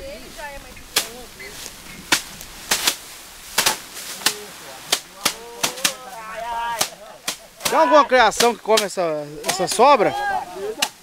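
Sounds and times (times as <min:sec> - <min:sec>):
rice sheaves whacking threshing table: 0:00.9 - 0:11.0.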